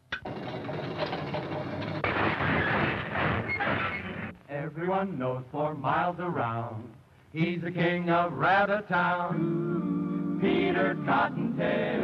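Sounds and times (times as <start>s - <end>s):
wheeled cages rolling: 0.2s - 4.3s.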